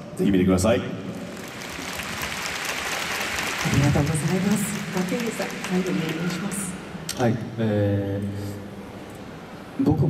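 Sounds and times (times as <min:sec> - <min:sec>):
audience applauding: 0:01.1 - 0:07.0.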